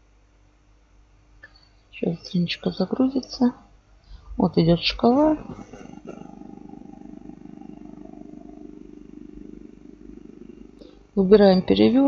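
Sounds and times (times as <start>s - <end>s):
low fluttering hum: 4.0s - 12.0s.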